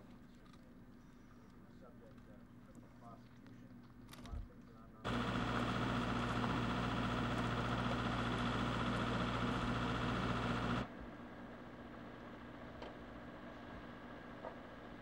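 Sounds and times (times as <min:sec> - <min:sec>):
machinery humming: 0:05.1 - 0:10.9.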